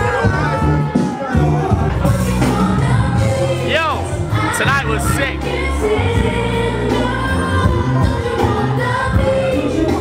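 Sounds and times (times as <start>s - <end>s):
club music with sung vocal: 0.0s - 10.0s.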